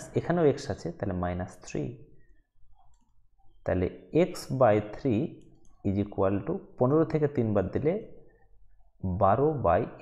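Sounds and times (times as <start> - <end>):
faint clicks of writing input: 2.3 - 3.5.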